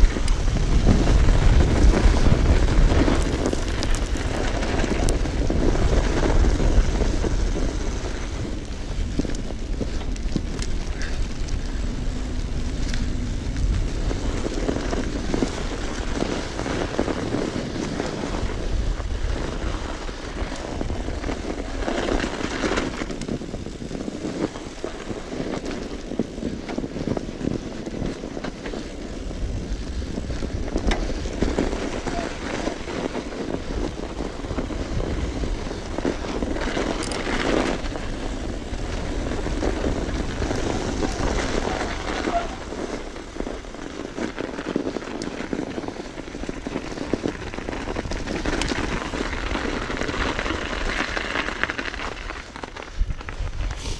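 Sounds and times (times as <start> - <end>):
bike tyres rolling over snow: 0.0 - 53.9
wind buffeting microphone: 0.0 - 53.9.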